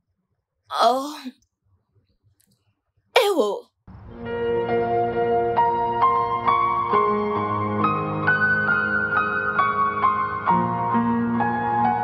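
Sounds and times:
woman exclaiming: 0.7 - 1.3, 3.2 - 3.6.

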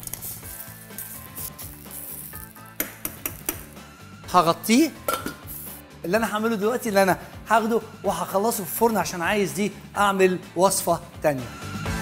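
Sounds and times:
meat sizzling in a pan: 0.0 - 2.7
metal utensil clinking on pan: 5.1 - 5.4.

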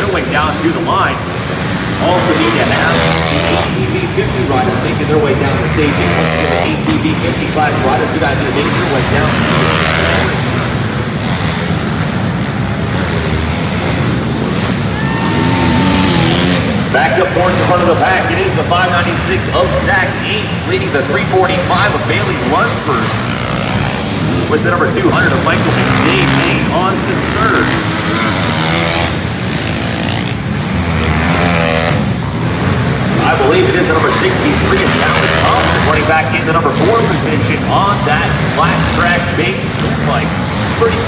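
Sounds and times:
pit bike engines revving: 0.0 - 41.0.

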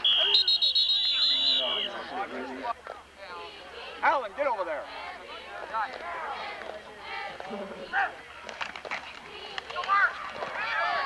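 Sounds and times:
players and spectators shouting: 0.0 - 8.3, 9.3 - 11.0.

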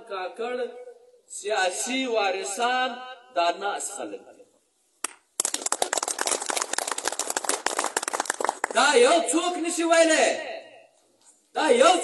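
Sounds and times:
crowd applauding: 5.4 - 8.8.

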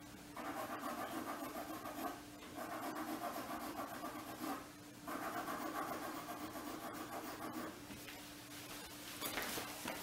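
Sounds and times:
drawing tool scratching paper: 0.4 - 7.8.

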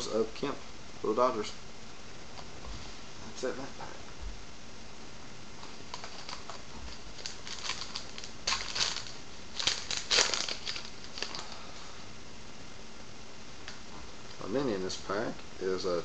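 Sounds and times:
card pack wrapper crinkling: 5.6 - 11.6.

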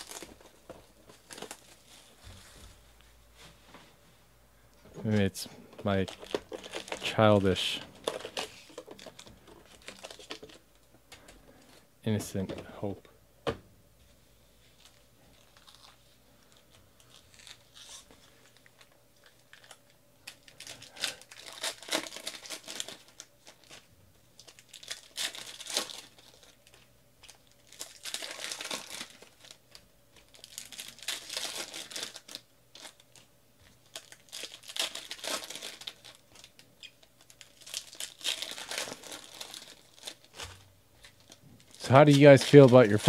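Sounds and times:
foil wrappers crinkling and tearing: 0.0 - 2.5, 5.0 - 12.2, 14.6 - 43.0.

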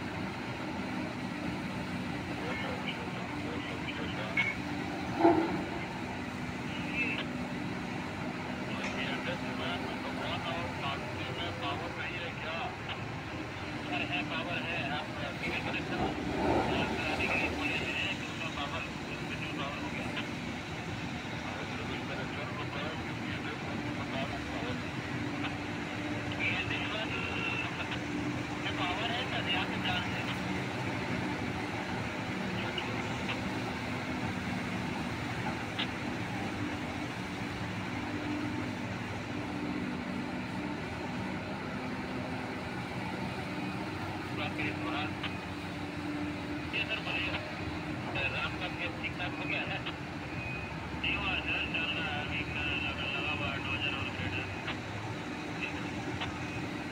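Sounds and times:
large diesel engines running: 0.0 - 56.9
voices: 0.4 - 56.9.

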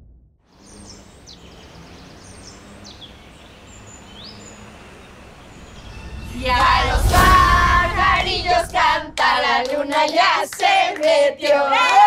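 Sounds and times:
small birds chirping: 0.5 - 6.3.

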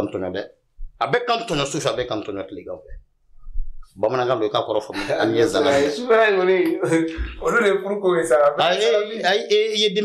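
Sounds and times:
man talking: 0.0 - 3.0, 4.0 - 10.0.

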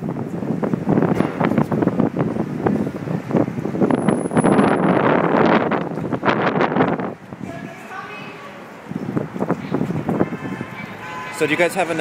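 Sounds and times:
wind buffeting microphone: 0.0 - 11.0
street noise: 0.0 - 12.0.

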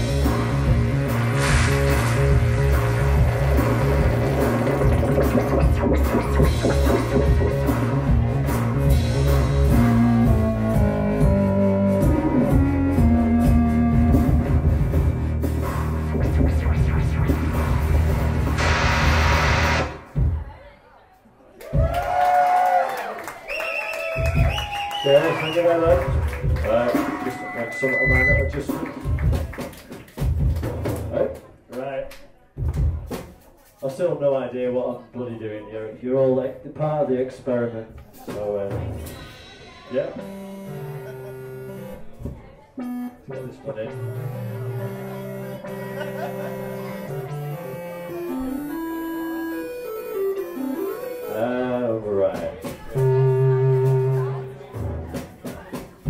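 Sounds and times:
clattering percussion: 0.0 - 9.4
looping synthesizer bass line: 0.0 - 20.1, 40.2 - 42.2, 42.8 - 51.6, 52.9 - 54.6
live electronic music: 0.0 - 20.4, 25.1 - 29.6, 39.9 - 56.0
cymbal and drum hits: 39.0 - 40.2.

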